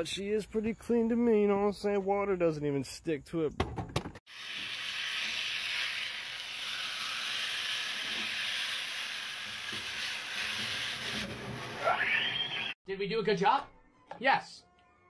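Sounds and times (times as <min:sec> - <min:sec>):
meat sizzling in a frying pan: 0:04.3 - 0:12.0.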